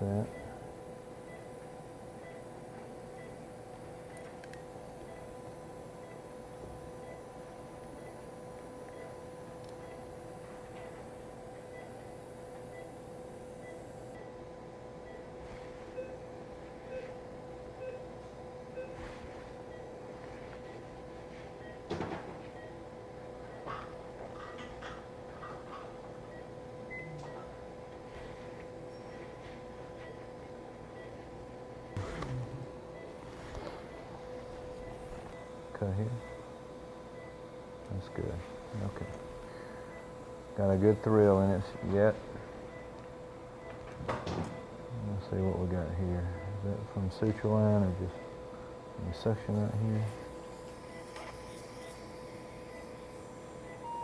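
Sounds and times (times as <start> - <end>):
faint regular beeps: 0.0 - 25.5, 26.2 - 27.6, 28.8 - 54.0
steady hum: 0.0 - 54.0.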